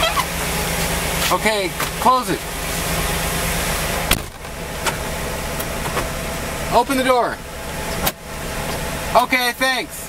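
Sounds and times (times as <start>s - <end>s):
car engine idling: 0.0s - 10.0s
car door thump: 4.0s - 5.0s.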